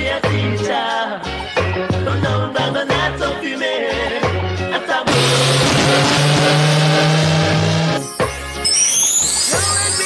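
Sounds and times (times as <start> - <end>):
loud rushing noise: 5.1 - 8.0.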